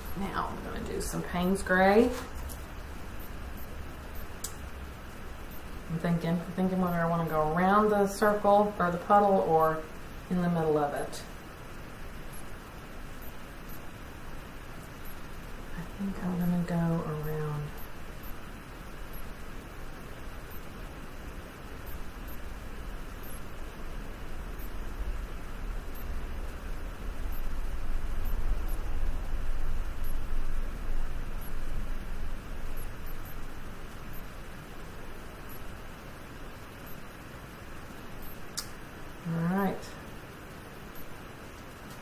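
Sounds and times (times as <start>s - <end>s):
sharp click: 4.4s - 4.6s, 38.2s - 38.8s.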